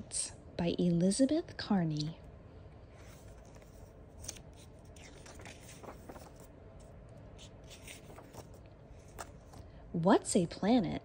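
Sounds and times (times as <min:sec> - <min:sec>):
book pages rustling: 0:02.9 - 0:09.7.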